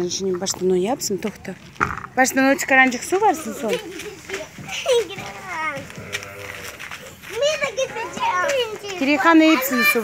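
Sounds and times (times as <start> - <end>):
young children talking and calling: 0.0 - 10.0.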